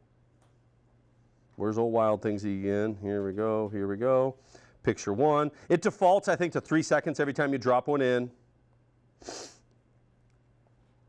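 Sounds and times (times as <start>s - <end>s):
person's sharp burst of breath: 9.2s - 9.7s.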